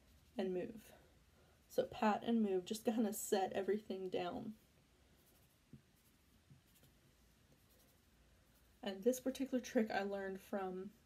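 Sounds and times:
fingers rustling through hair: 1.7s - 9.6s.

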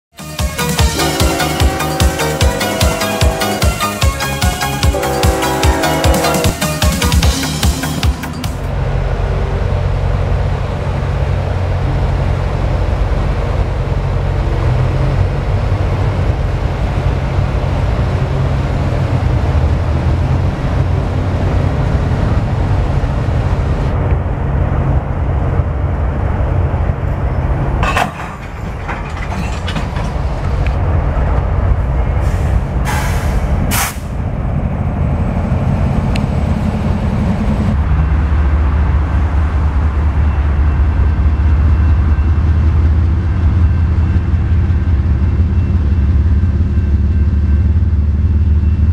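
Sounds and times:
locomotive engines rumbling: 0.2s - 48.9s
train cars rolling on rails: 0.6s - 48.9s.

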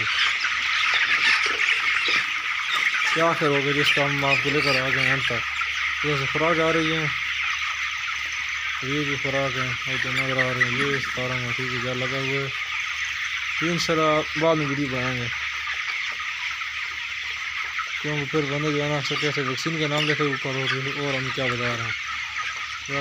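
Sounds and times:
chickens peeping and chirping: 0.0s - 23.0s.

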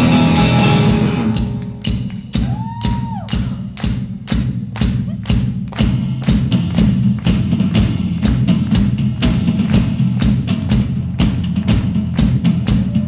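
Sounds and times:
rock drumming: 0.0s - 13.0s.

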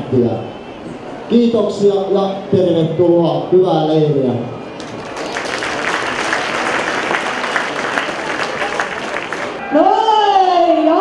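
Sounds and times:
crowd applauding: 4.8s - 9.6s.

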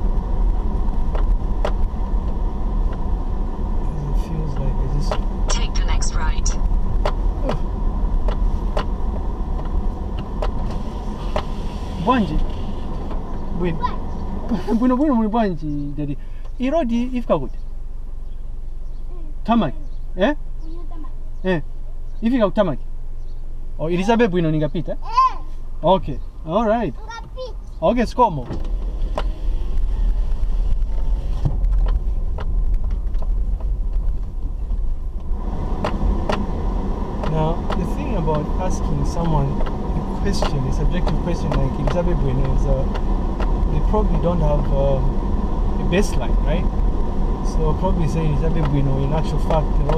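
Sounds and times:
car rumbling over dirt road: 0.0s - 49.9s
sharp clicks and knocks: 4.5s - 5.6s, 8.2s - 11.5s, 28.4s - 29.9s, 30.8s - 36.5s, 37.2s - 43.7s.

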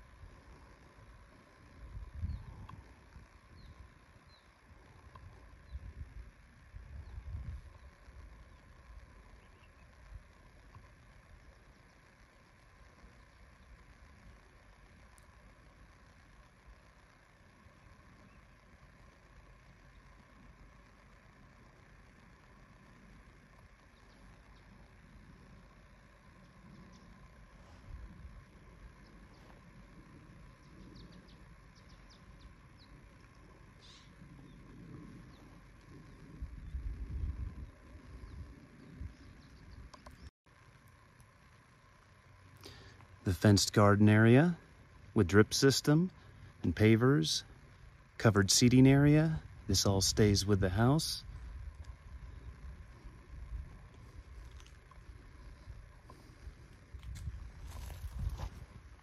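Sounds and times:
small birds chirping: 0.0s - 58.7s
faint steady rush: 0.0s - 59.0s
wind buffeting microphone: 1.8s - 3.9s, 5.2s - 7.9s, 34.2s - 39.9s, 55.5s - 58.8s.

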